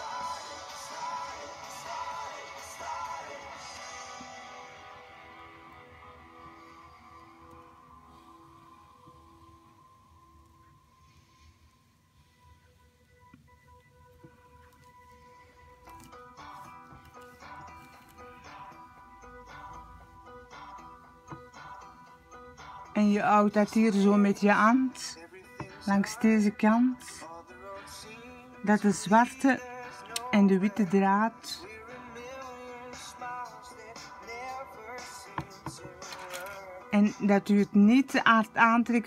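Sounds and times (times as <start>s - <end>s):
soft background music: 0.0s - 39.0s.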